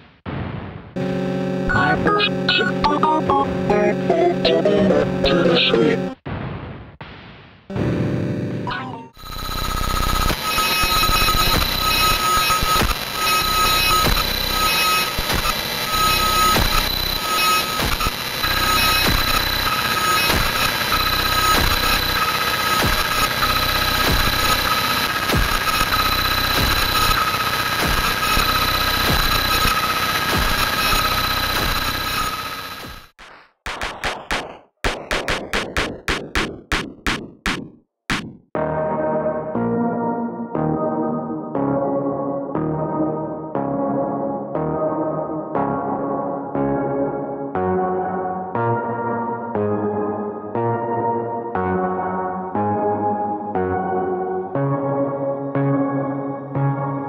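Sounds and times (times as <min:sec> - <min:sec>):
distorted noise wall: 0:00.0 - 0:36.8.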